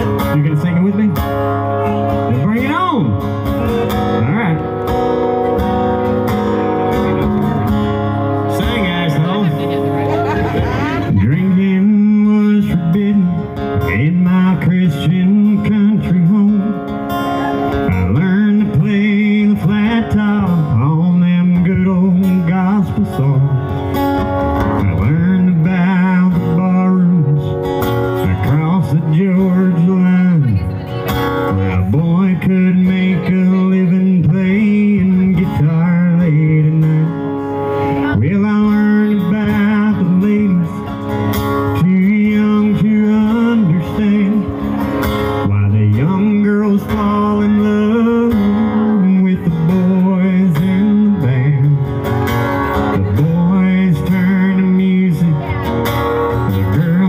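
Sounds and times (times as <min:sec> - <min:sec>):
acoustic guitars strummed and picked: 0:00.0 - 0:57.0
man singing: 0:00.0 - 0:57.0.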